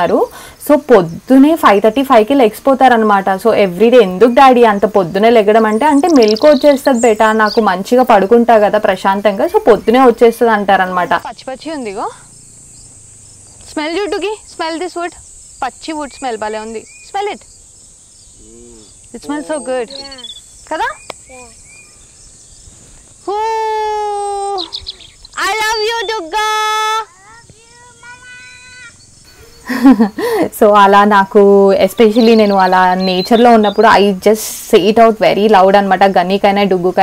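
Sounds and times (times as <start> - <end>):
woman speaking: 0.0 - 12.2, 13.7 - 17.4, 19.1 - 21.0, 23.2 - 24.8, 25.4 - 27.1, 29.8 - 37.0
insects droning: 0.0 - 37.0
loud burst of laughter: 29.6 - 30.5.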